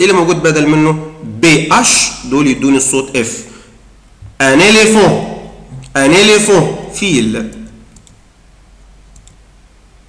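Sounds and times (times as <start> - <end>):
steady low hum: 0.0 - 10.0
computer mouse clicks: 7.6 - 8.2, 9.1 - 9.4.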